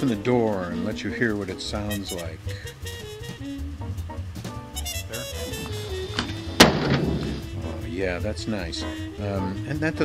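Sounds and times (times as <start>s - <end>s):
background music: 0.0s - 10.0s
van door slamming shut: 6.2s - 7.6s.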